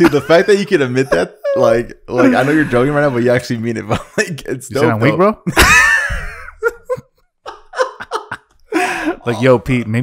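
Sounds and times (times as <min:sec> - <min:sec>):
man laughing hard: 0:00.0 - 0:04.1, 0:05.5 - 0:09.4.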